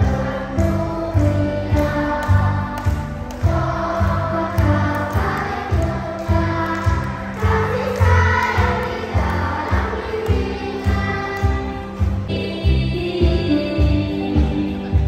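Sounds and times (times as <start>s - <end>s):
group of voices singing: 0.0s - 12.2s
upbeat backing music: 0.0s - 15.0s.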